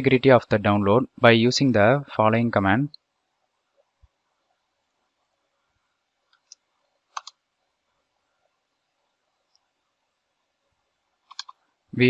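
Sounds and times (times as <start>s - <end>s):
keyboard and mouse clicks: 6.3s - 7.4s, 11.2s - 11.6s.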